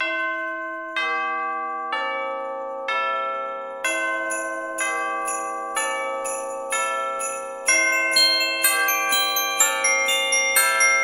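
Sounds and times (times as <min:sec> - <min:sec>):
bell tone melody: 0:00.0 - 0:11.0.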